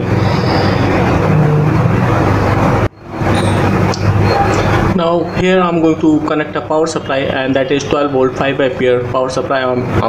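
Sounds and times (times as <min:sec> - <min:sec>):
loud rushing noise: 0:00.0 - 0:05.5
low hum: 0:00.0 - 0:07.1.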